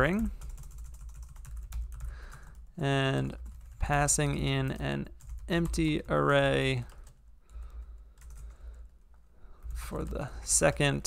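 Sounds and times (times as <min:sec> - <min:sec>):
computer keyboard keystrokes: 0:00.4 - 0:02.6, 0:06.8 - 0:08.6.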